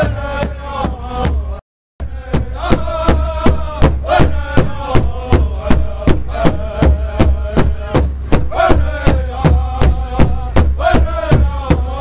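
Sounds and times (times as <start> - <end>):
drummers singing together: 0.0 - 12.0
large hide drum beating: 0.0 - 12.0.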